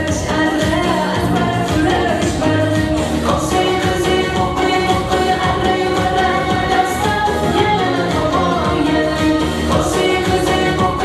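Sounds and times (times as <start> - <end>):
keyboard accompaniment: 0.0 - 11.0
woman singing into microphone: 0.0 - 11.0.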